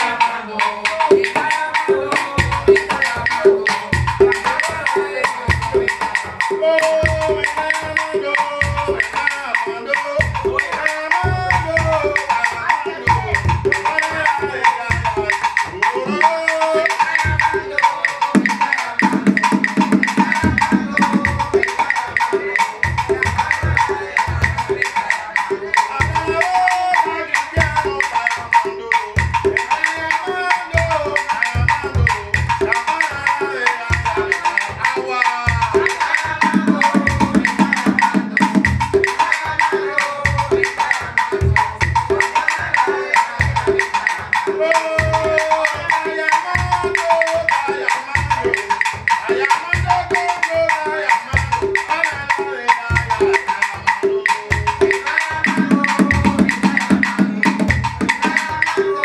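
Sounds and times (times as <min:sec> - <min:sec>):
box drums and conga rhythm: 0:00.0 - 0:59.0
person singing: 0:00.0 - 0:59.0.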